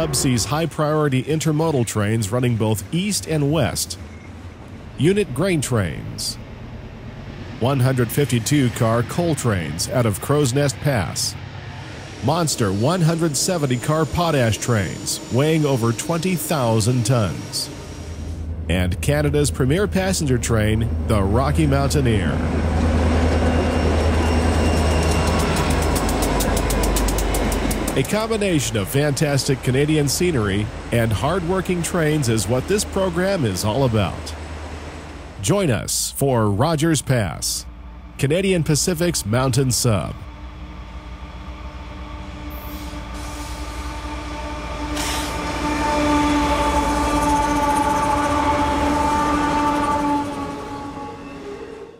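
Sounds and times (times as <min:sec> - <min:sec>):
locomotive horn chord: 0:00.0 - 0:01.6, 0:40.1 - 0:51.9
diesel locomotive engine drone: 0:00.0 - 0:51.9
freight train rumbling past: 0:00.0 - 0:51.9
train wheels clicking over joints: 0:23.2 - 0:34.2.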